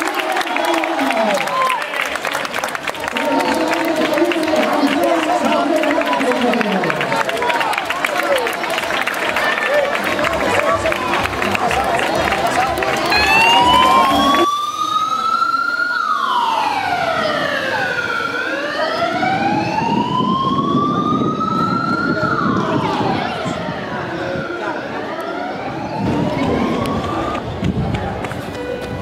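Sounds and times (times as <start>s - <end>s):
spectators clapping: 0.0s - 14.5s, 26.4s - 29.0s
spectators chattering: 0.0s - 29.0s
siren wailing: 12.2s - 27.6s.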